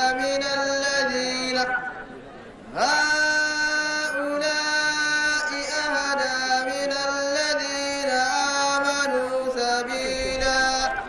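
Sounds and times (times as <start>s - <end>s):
person chanting unaccompanied: 0.0s - 2.1s, 2.7s - 11.0s.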